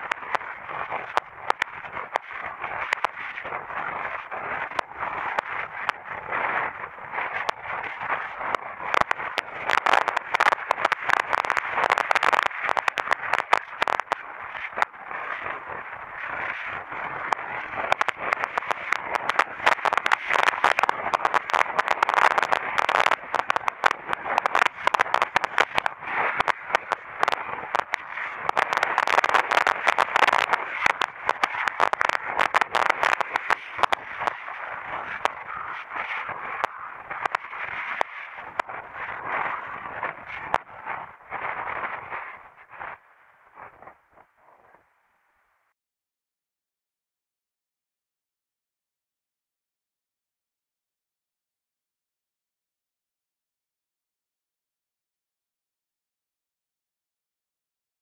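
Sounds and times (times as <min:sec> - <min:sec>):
wind rushing on microphone: 0:00.0 - 0:44.8
crackling clicks: 0:00.0 - 0:44.9.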